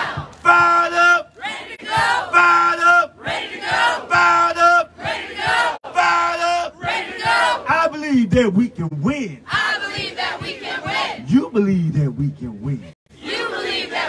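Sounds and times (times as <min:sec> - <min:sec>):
man shouting into a microphone: 0:00.4 - 0:01.3, 0:02.3 - 0:03.1, 0:05.9 - 0:06.8.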